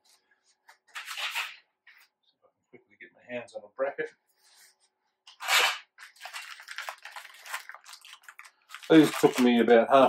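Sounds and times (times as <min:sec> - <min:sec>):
plastic packet rasp: 0:05.3 - 0:09.6
plastic crinkling and rustling: 0:06.0 - 0:10.0.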